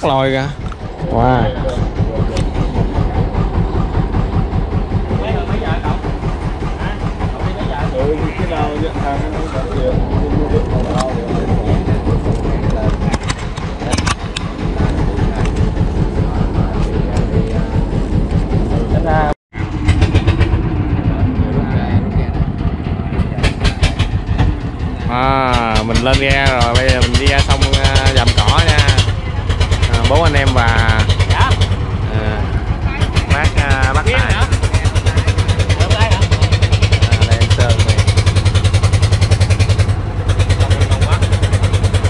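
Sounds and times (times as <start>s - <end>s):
boat engine thumping: 0.0s - 42.0s.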